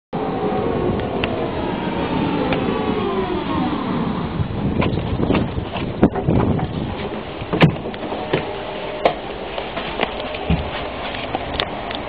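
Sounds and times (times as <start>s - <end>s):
motor and gear whine: 0.2s - 12.0s
tram wheels rumbling on rails: 0.2s - 12.0s.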